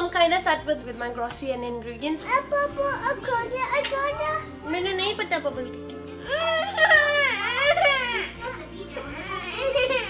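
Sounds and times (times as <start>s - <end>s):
background music: 0.0s - 10.0s
toddler crying and whining: 6.2s - 10.0s.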